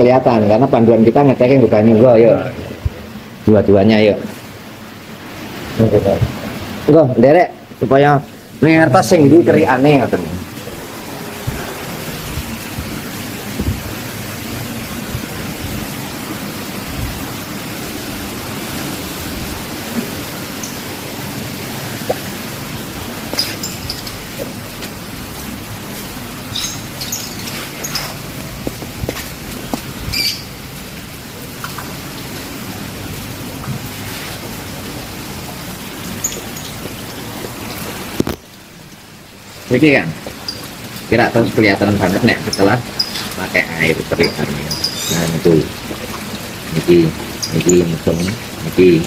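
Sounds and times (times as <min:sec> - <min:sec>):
small waterfall splashing into pond: 0:00.0 - 0:49.0.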